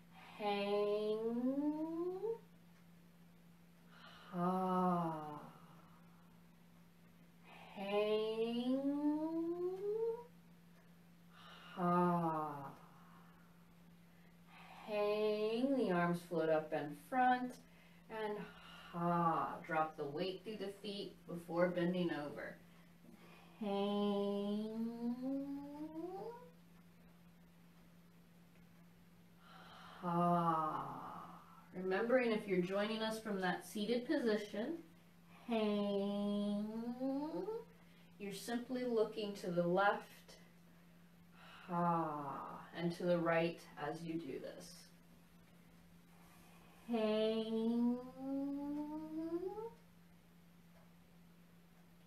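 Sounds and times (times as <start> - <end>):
faint steady hum: 0.0 - 52.0
woman holding vocal tone: 0.2 - 2.4, 23.6 - 26.5, 35.4 - 37.7, 46.9 - 49.8.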